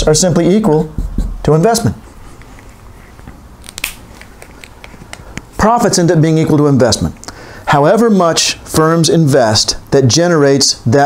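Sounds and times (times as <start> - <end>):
marker clicks and scrapes: 2.3 - 5.5.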